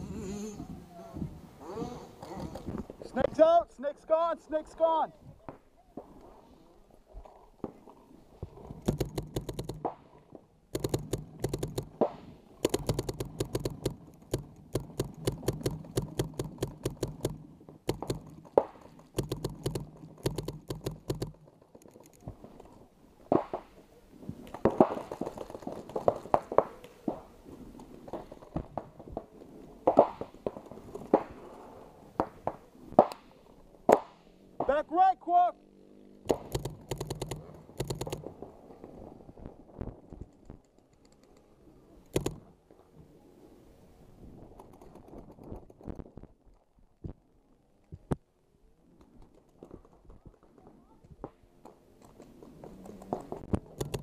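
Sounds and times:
paintball marker shots: 10.8 - 21.4, 32.2 - 34.8, 36.2 - 38.3.

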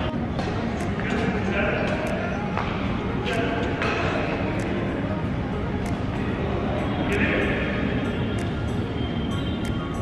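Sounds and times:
people's voices: 0.0 - 10.0
rackets striking shuttlecock: 0.3 - 4.7.

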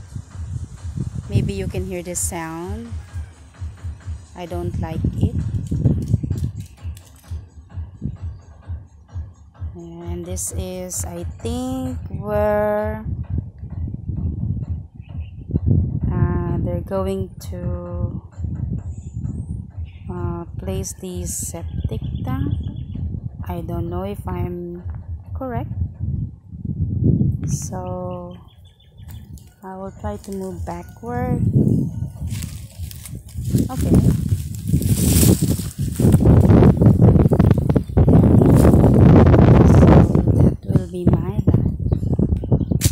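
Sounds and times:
wind buffeting microphone: 0.0 - 42.9.

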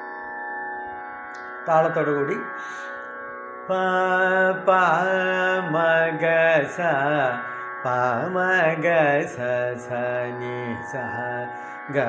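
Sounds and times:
steady drone: 0.0 - 12.0
man singing: 3.7 - 12.0.

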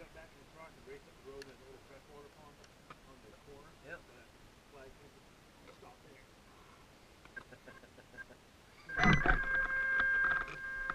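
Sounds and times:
steady pitched tone with overtones: 8.2 - 10.9.

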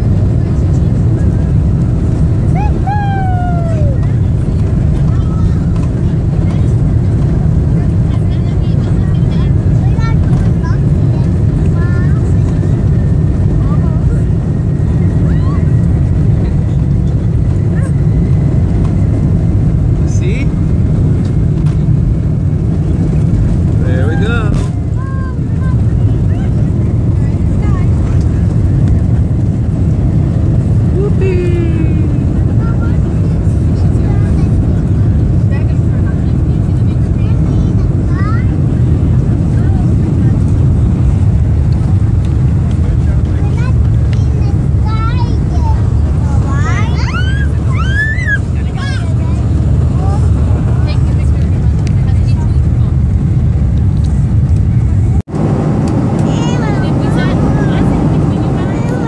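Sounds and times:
jet engines roaring in cabin: 0.0 - 59.0.

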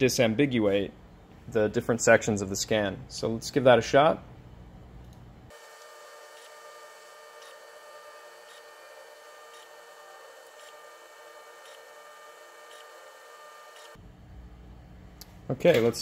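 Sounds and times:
scanner humming with steady tones: 4.2 - 15.4.

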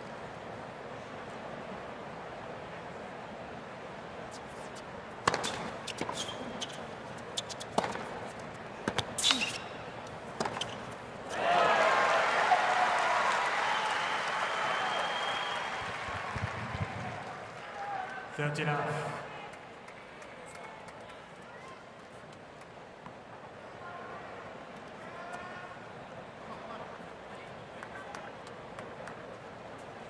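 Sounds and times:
ball bouncing on hard court: 5.2 - 6.8, 7.4 - 9.6, 10.4 - 11.0
tennis racket hitting ball: 5.2 - 9.7, 10.3 - 11.0
crowd applause and cheering: 11.3 - 18.3.

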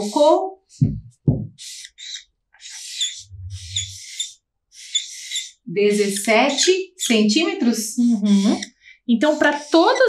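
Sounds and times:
marker scratching on paper: 0.0 - 7.7, 8.3 - 10.0.

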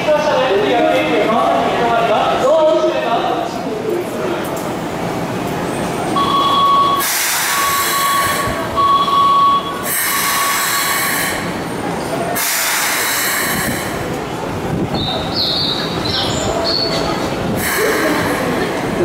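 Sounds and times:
electronic warning beep: 6.2 - 11.1
train doors hissing: 6.4 - 19.0.

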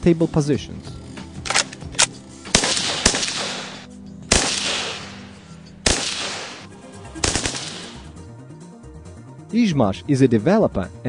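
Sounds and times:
faint background music: 0.0 - 11.0
assault rifle shots: 1.4 - 8.1.

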